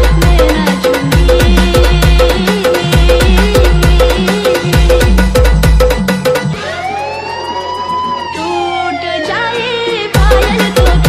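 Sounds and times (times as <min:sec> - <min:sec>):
rising and falling siren tone: 0:06.5 - 0:09.4.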